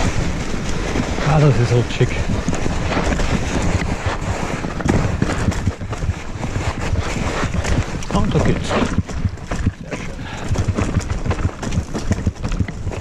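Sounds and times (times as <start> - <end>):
bike rattling and knocking: 0.0 - 13.0
bike tyres rumbling: 0.0 - 13.0
wind buffeting microphone: 0.0 - 13.0.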